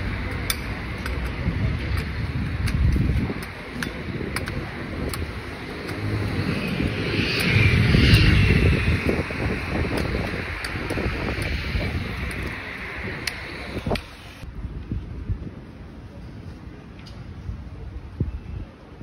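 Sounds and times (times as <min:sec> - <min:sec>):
street traffic rumble: 0:00.0 - 0:19.0
wind buffeting microphone: 0:00.0 - 0:19.0
vehicle passing: 0:04.6 - 0:14.4.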